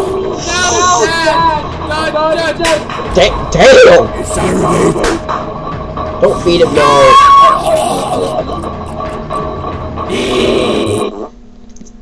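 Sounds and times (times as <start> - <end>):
loud guttural growl: 7.1 - 8.7.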